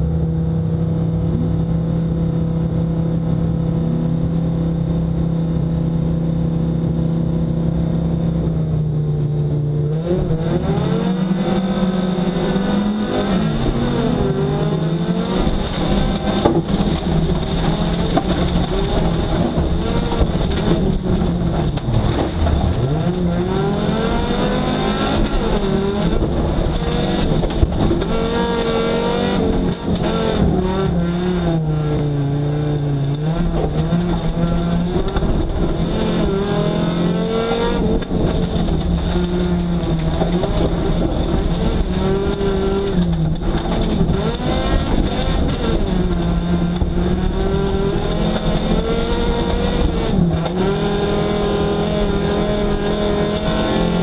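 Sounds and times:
car engine revving: 0:00.0 - 0:54.0
tyre and gravel noise: 0:12.9 - 0:31.1, 0:33.0 - 0:54.0.

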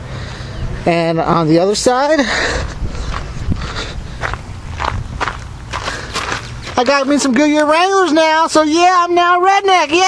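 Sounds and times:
low steady rumble: 0:00.0 - 0:07.2
footsteps on gravel: 0:02.3 - 0:08.7.

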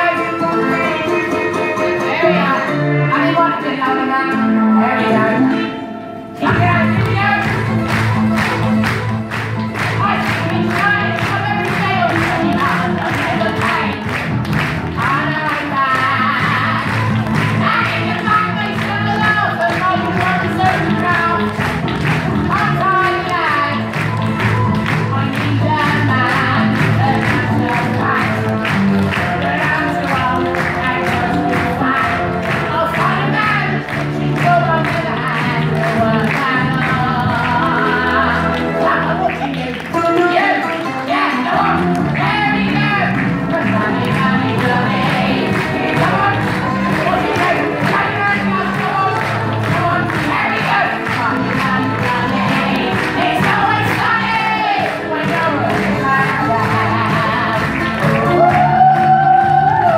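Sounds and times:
person singing: 0:00.0 - 0:07.7, 0:15.0 - 0:59.9.

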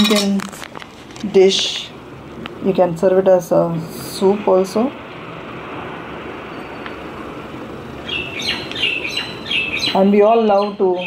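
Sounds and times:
room noise hiss: 0:00.0 - 0:11.0
small birds chirping: 0:08.0 - 0:11.0.

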